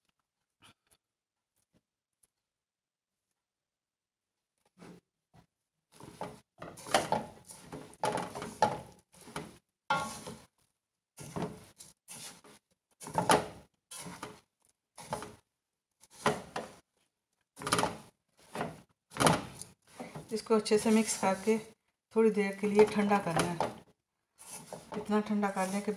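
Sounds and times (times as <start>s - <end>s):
spatula scraping a metal pan: 6.0s - 10.5s, 11.2s - 14.4s, 15.0s - 15.4s, 19.9s - 21.7s, 24.4s - 25.9s.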